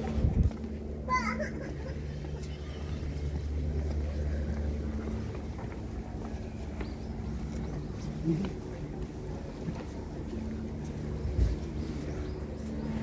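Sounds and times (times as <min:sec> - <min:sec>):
indistinct voices of passersby: 0:00.0 - 0:13.0
steady low rumble: 0:00.0 - 0:13.0.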